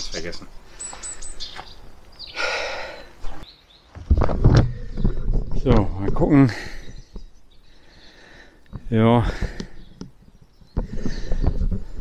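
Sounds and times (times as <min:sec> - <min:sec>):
rustling and shuffling: 0:03.2 - 0:06.4, 0:08.7 - 0:12.0.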